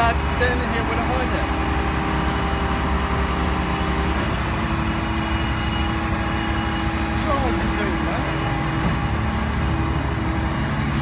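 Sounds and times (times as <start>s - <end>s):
engine low drone: 0.0s - 11.0s.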